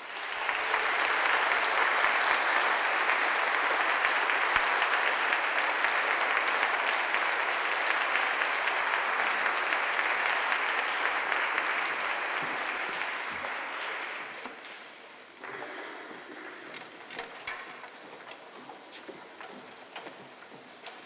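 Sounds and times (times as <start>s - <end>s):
audience clapping: 0.0s - 21.0s.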